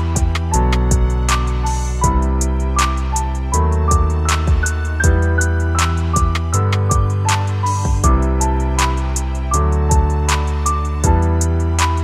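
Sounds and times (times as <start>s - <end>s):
deep sustained bass: 0.0s - 12.0s
piano melody: 0.0s - 12.0s.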